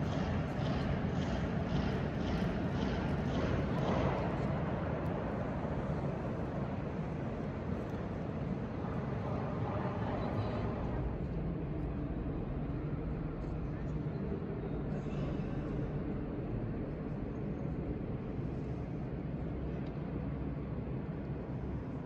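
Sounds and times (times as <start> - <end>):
steady background rumble: 0.0 - 22.0.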